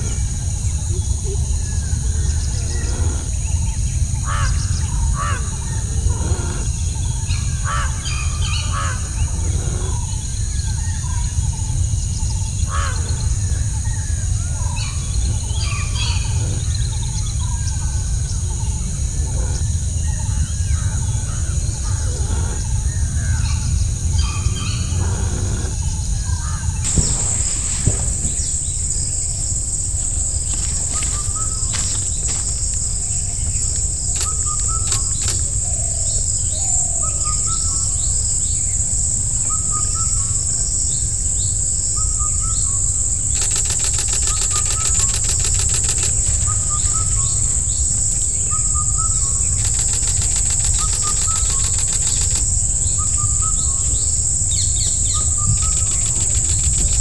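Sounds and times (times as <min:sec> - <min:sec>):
birds chirping: 0:00.0 - 0:38.0, 0:43.2 - 0:57.0
high insect drone: 0:00.0 - 0:57.0
loud high insect buzz: 0:00.0 - 0:57.0
low background rumble: 0:00.0 - 0:57.0.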